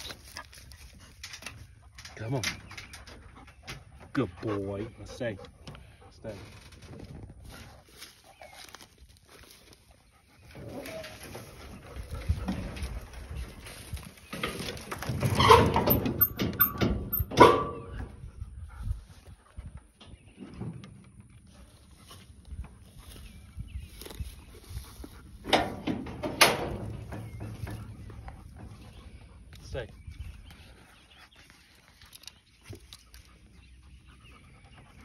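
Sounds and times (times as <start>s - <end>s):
chain-link gate rattling: 14.4s - 18.0s, 25.5s - 28.8s
loud ringing metal clank: 15.5s - 18.0s.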